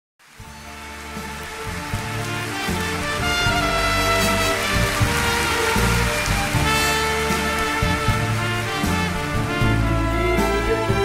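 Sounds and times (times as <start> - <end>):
audience applause: 0.2 - 10.6
orchestra playing strings and brass: 0.2 - 11.0.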